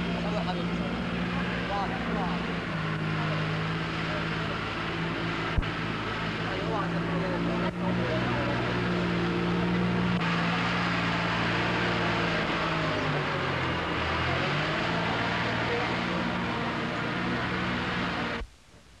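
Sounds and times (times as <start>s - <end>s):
engine running: 0.0s - 18.5s.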